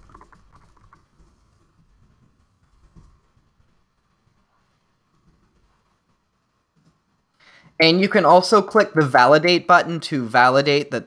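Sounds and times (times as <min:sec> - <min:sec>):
typing on a keyboard: 0:00.0 - 0:01.9.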